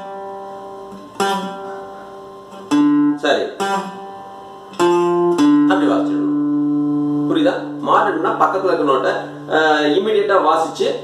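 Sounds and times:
acoustic guitar notes plucked: 0.0 - 11.0.

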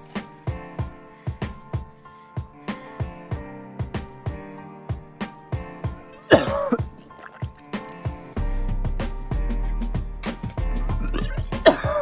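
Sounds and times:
background music with steady beat: 0.0 - 12.0
person retching: 6.2 - 8.0, 10.9 - 12.0.

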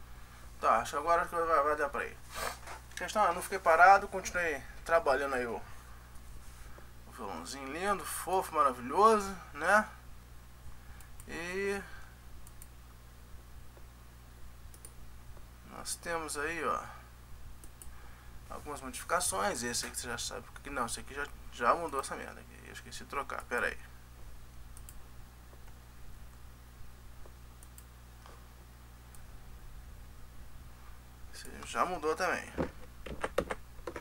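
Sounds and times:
low electrical hum: 0.0 - 34.0
computer mouse clicks: 12.4 - 12.7, 14.7 - 15.0, 17.6 - 17.9, 24.7 - 25.0, 27.2 - 27.9.

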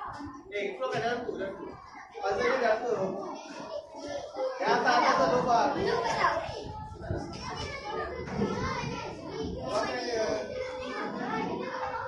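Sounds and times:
children talking at once: 0.0 - 12.0.

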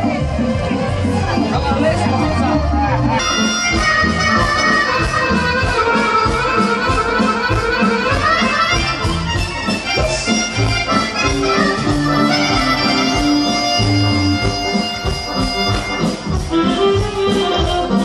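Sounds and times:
accordion: 0.0 - 18.0
folk band playing: 0.0 - 18.0
violin: 0.0 - 18.0
drum kit beat: 3.2 - 18.0.

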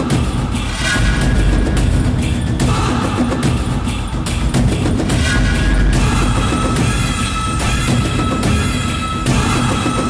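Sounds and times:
dramatic orchestral score: 0.0 - 10.0.

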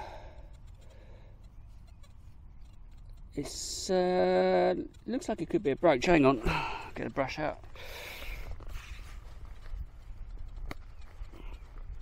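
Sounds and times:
gloved fingers rubbing soil: 0.0 - 12.0.

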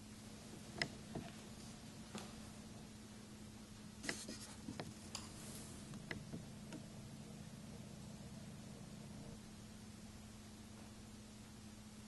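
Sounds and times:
low hum: 0.0 - 12.0
brush scratching on paper: 4.0 - 5.9.

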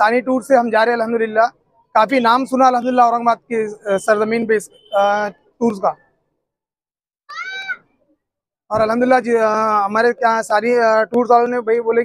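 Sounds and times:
brief high-pitched cry: 7.3 - 7.9.

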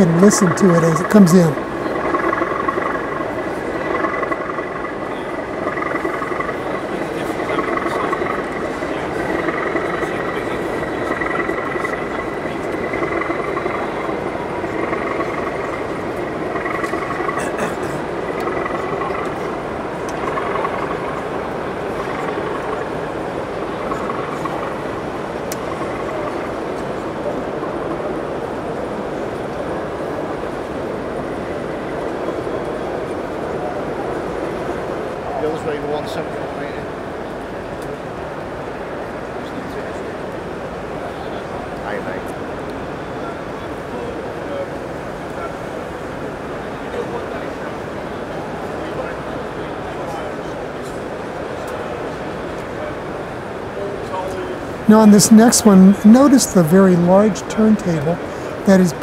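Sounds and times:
crowd chatter: 0.0 - 30.3, 46.5 - 59.0.

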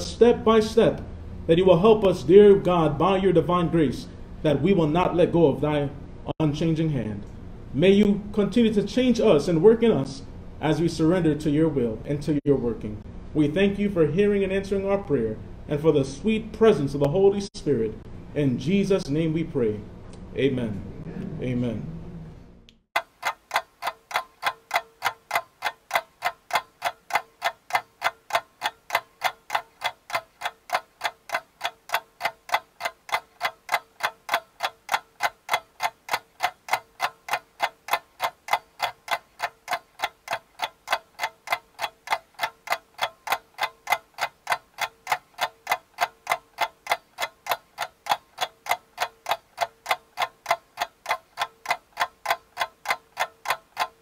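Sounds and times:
clock ticking: 23.0 - 54.0.

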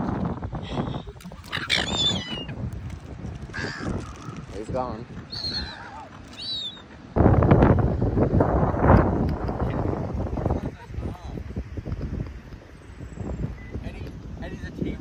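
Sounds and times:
wind buffeting microphone: 0.0 - 15.0
gulls squawking: 1.3 - 2.6, 3.5 - 7.0.

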